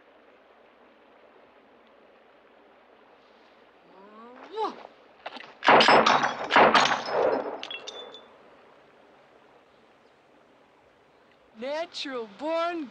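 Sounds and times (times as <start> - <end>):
glass bottles shattering: 5.6 - 8.3
high glassy tinkling: 7.1 - 8.3.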